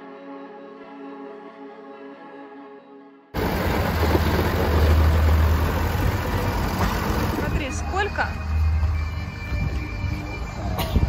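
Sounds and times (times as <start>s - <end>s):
tractor engine rumbling: 3.4s - 10.8s.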